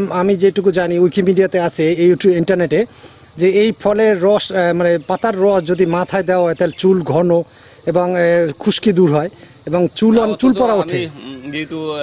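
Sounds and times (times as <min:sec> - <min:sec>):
high-pitched insect chorus: 0:00.0 - 0:12.0
man talking: 0:00.0 - 0:12.0.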